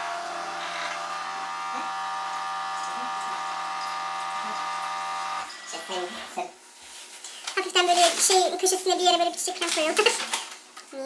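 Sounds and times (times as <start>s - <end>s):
electric motor hum: 0.0s - 6.4s.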